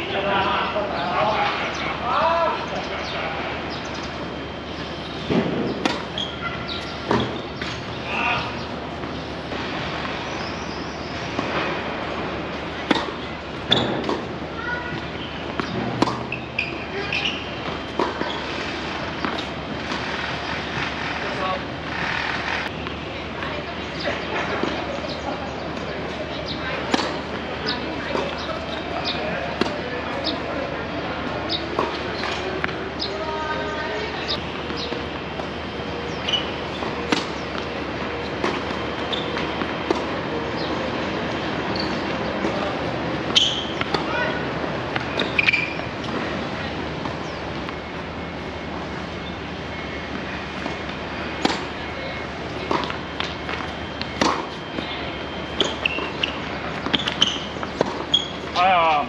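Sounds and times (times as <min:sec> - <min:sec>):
steady background noise: 0:00.0 - 0:59.0
tennis balls struck by rackets: 0:05.2 - 0:09.6, 0:11.3 - 0:21.0, 0:24.3 - 0:30.4, 0:34.3 - 0:46.4, 0:50.0 - 0:58.6
tennis balls bouncing on court: 0:05.3 - 0:21.0, 0:22.6 - 0:30.4, 0:31.2 - 0:33.2, 0:34.2 - 0:59.0.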